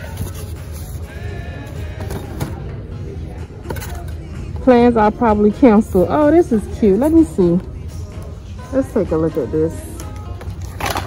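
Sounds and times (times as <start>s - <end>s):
shop background music: 0.0s - 11.0s.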